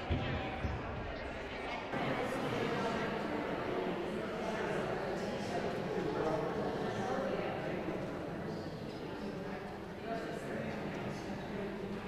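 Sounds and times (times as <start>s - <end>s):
murmur of crowd chatting: 0.0s - 12.0s.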